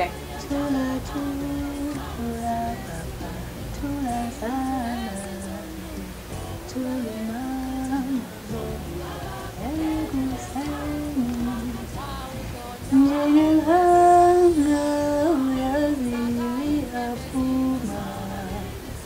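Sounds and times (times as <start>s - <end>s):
woman singing a lullaby: 0.0s - 19.0s.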